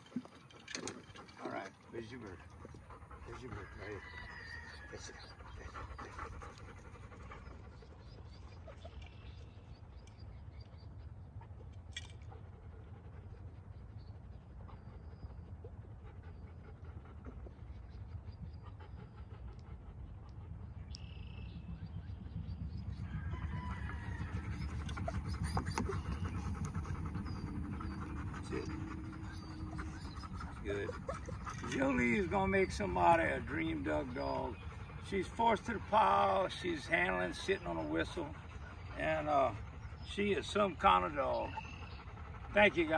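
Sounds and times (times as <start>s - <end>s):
dog panting: 0.0s - 42.9s
steady low rumble: 12.2s - 36.0s.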